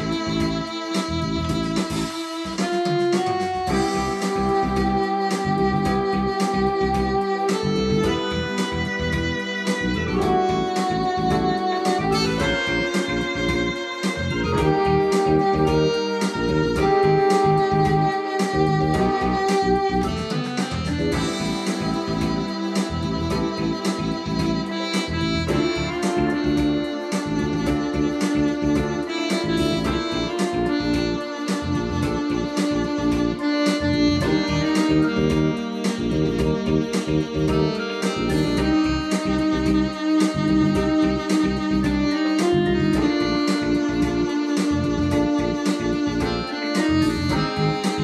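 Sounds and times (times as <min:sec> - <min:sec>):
electronic organ playing jazz: 0:00.0 - 0:48.0.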